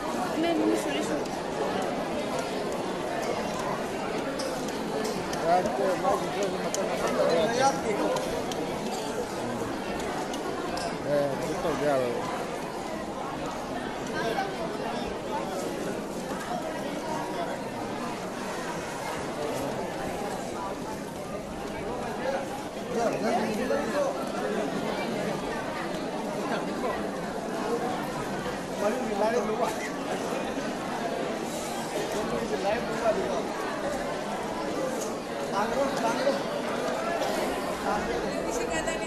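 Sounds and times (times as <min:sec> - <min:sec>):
crowd babble of young voices: 0:00.0 - 0:39.0
students chattering: 0:00.0 - 0:39.0.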